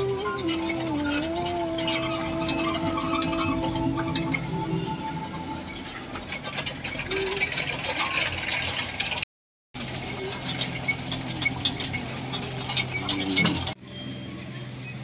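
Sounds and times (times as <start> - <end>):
low background music: 0.0 - 6.2
metal prayer wheels clicking and rattling: 0.0 - 9.2, 9.8 - 15.0.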